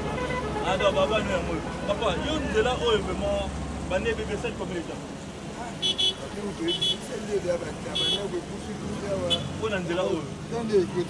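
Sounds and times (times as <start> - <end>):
man talking: 0.6 - 11.0.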